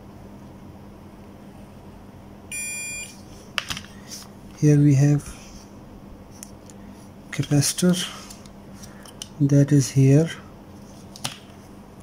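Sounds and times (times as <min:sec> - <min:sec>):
multimeter continuity beep: 0:02.5 - 0:03.2.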